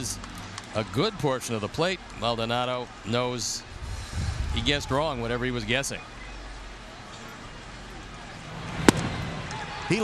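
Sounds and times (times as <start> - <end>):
stadium crowd noise: 0.0 - 10.0
baseball popping into mitt: 8.8 - 9.1.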